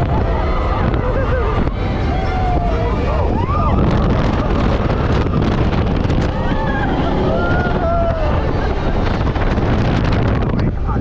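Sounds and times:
low rumble of ride vehicle: 0.0s - 11.0s
wind rushing over microphone: 0.0s - 11.0s.

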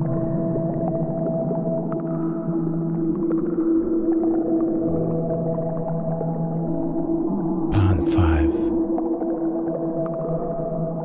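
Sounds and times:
ambient droning music: 0.0s - 11.0s.

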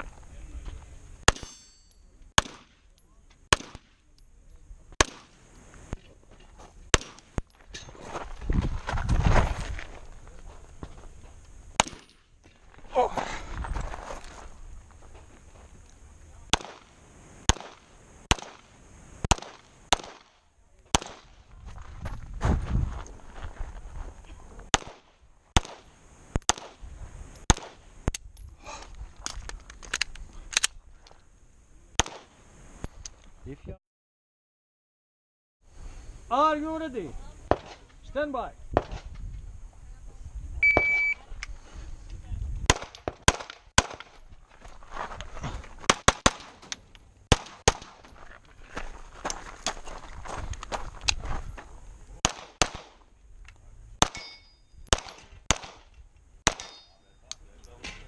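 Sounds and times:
pistol shots: 1.3s - 1.6s, 2.4s - 2.8s, 3.5s - 4.0s, 11.8s - 12.2s, 16.5s - 16.9s, 17.5s - 18.7s, 19.3s - 20.3s, 20.9s - 21.4s, 24.7s - 25.9s, 27.5s - 27.8s, 32.0s - 32.3s, 42.7s - 44.1s, 45.9s - 46.6s, 47.3s - 48.0s, 52.2s - 53.0s, 54.0s - 57.0s.

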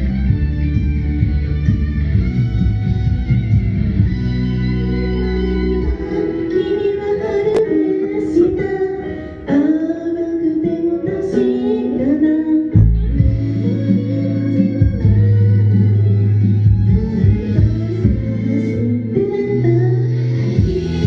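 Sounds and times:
strong bass line: 0.0s - 9.2s, 12.7s - 21.0s
instrumental accompaniment: 0.0s - 21.0s
female group singing pop song: 5.8s - 16.0s, 16.8s - 21.0s.

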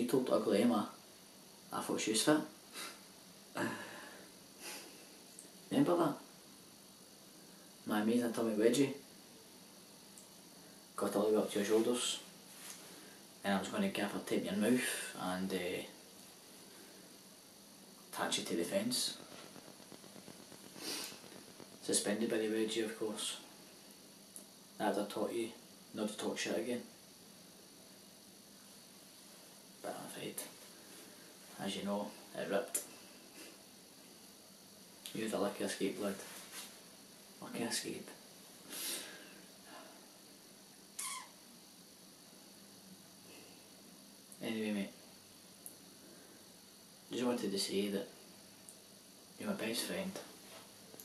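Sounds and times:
man sniffing: 2.7s - 3.0s, 3.6s - 5.1s, 20.7s - 21.3s, 38.6s - 39.4s
person breathing in: 3.6s - 5.1s, 38.7s - 40.0s.

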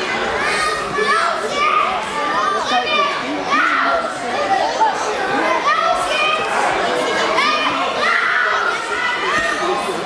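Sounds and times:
children shouting: 0.0s - 10.0s.

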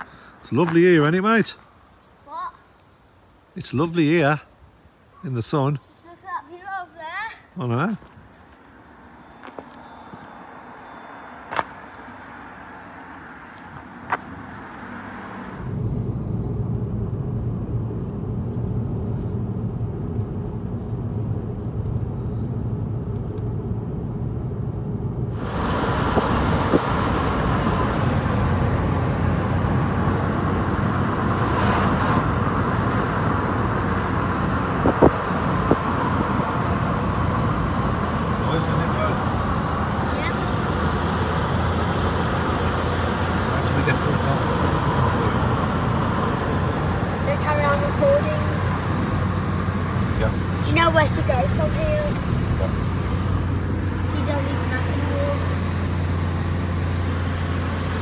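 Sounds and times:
car engine hum and tyre noise: 7.6s - 58.0s.

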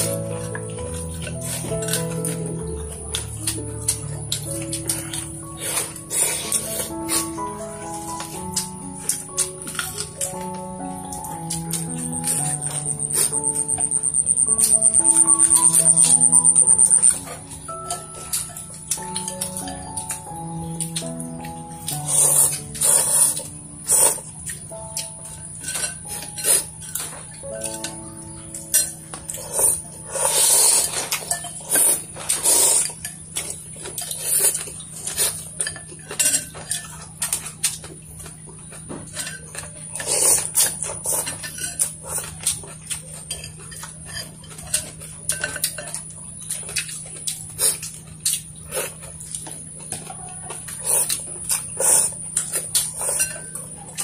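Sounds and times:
chopsticks clinking on ceramic bowls: 0.0s - 54.0s
eating noises: 0.0s - 54.0s
simple melody: 0.0s - 54.0s.

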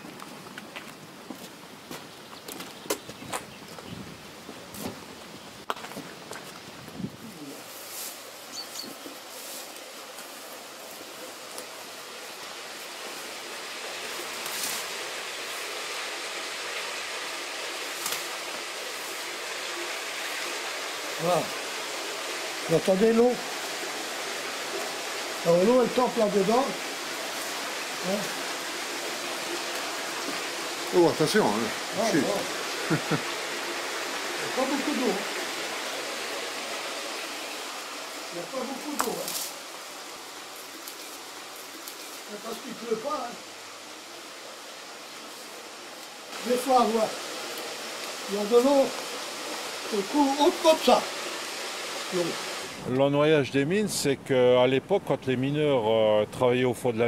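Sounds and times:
water rushing: 4.2s - 57.0s.

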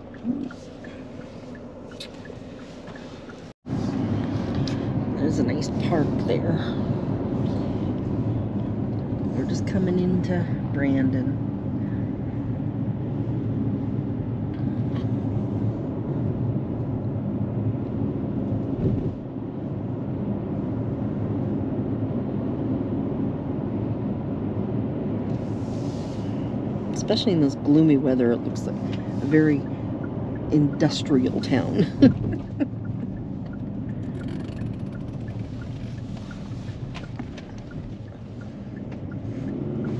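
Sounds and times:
car road and engine noise: 0.0s - 39.9s.

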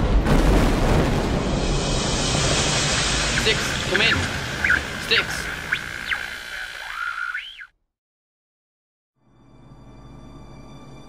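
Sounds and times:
radio static hiss and whine: 2.6s - 7.6s
warbling squeals: 2.8s - 7.7s.

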